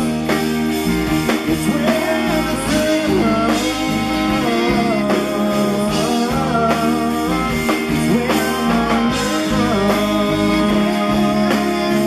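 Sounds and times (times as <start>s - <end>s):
acoustic guitar: 0.0s - 12.0s
drums: 0.0s - 12.0s
keyboard: 0.0s - 12.0s
live country band playing: 0.0s - 12.0s.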